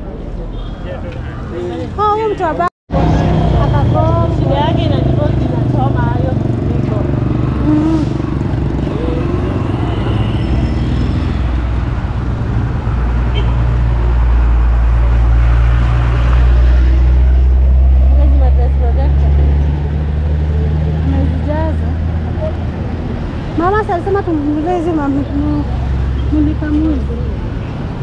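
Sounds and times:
busy street traffic: 0:00.0 - 0:28.0
passers-by voices: 0:00.0 - 0:28.0
vehicle engine rumble: 0:00.0 - 0:28.0.

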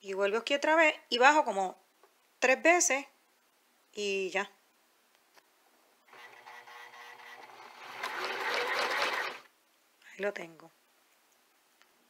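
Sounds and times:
electric sewing machine running: 0:06.1 - 0:09.5.

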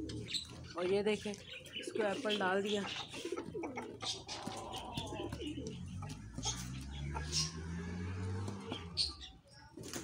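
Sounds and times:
pigeons cooing: 0:00.0 - 0:09.4.

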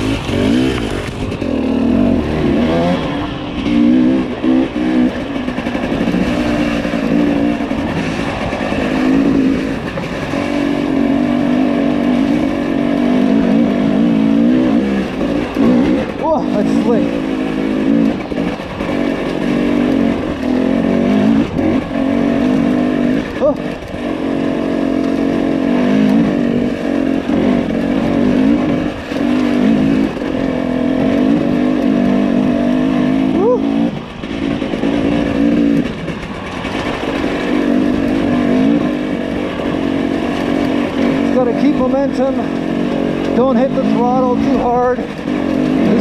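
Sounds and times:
motorcycle engine revving: 0:00.0 - 0:46.0.

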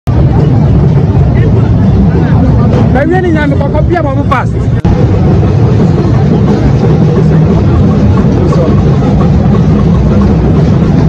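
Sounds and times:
crowd talking: 0:00.1 - 0:11.0
low rumble: 0:00.1 - 0:11.0.

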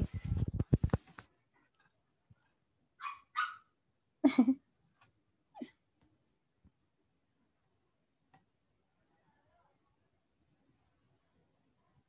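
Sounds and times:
dog barking: 0:03.0 - 0:03.7.

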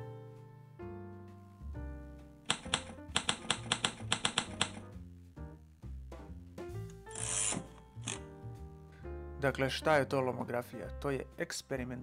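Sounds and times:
soft background music: 0:00.0 - 0:12.0
typewriter key clicks: 0:02.5 - 0:04.9.

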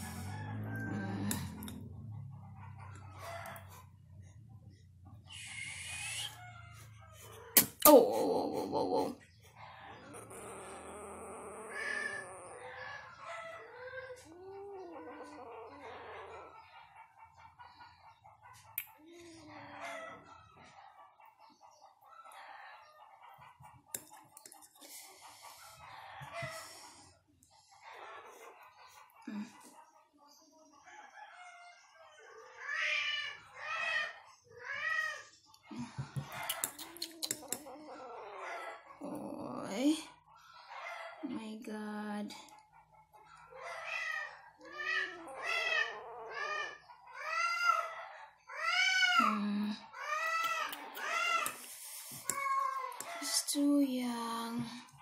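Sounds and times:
rising-and-falling animal calls: 0:05.2 - 0:07.4, 0:09.7 - 0:16.7, 0:43.4 - 0:49.3.

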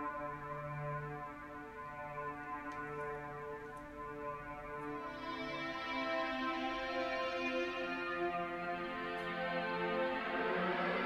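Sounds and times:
sustained synth pad notes: 0:00.0 - 0:11.0.

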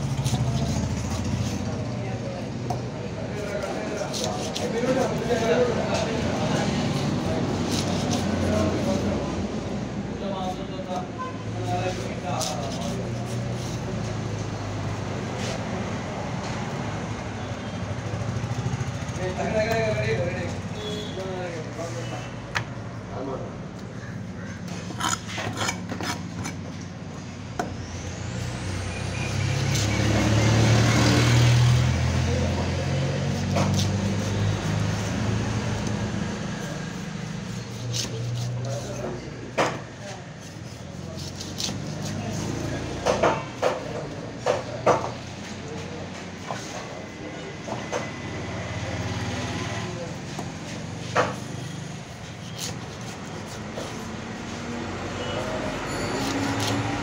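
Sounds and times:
knife chopping on wooden block: 0:33.3 - 0:34.9, 0:36.9 - 0:39.8, 0:41.1 - 0:45.2.

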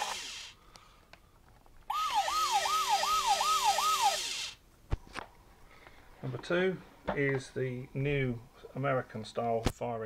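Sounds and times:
toy siren wailing: 0:00.0 - 0:00.4, 0:01.9 - 0:04.6.

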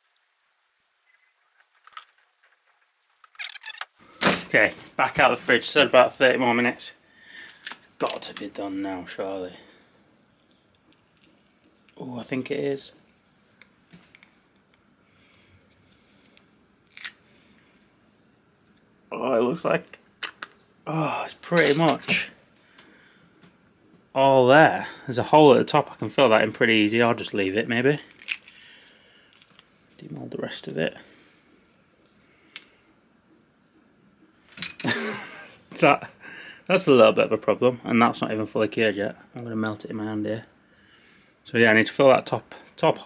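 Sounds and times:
silicone mould being peeled: 0:10.2 - 0:12.0, 0:13.6 - 0:17.2, 0:28.1 - 0:30.0.

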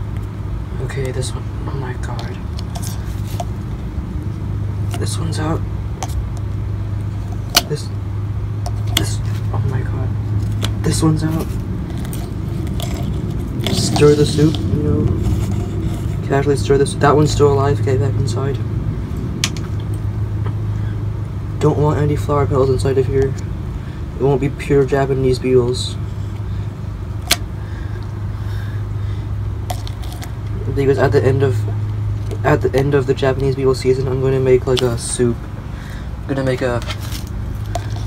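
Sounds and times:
low background hum: 0:00.0 - 0:38.0
steady low rumble: 0:00.0 - 0:38.0
metal wire scraping glass jar: 0:02.6 - 0:03.6, 0:11.4 - 0:16.3, 0:29.7 - 0:30.4, 0:36.8 - 0:38.0.

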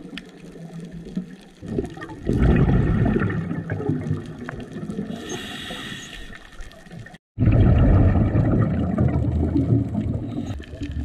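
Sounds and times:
underwater bubbles rushing: 0:00.0 - 0:11.0.

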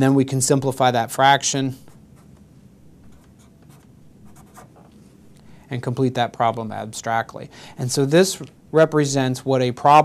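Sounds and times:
marker pen scratching on paper: 0:03.0 - 0:05.0.

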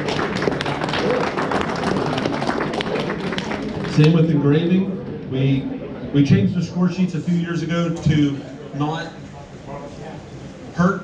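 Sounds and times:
audience applauding: 0:00.0 - 0:04.1.

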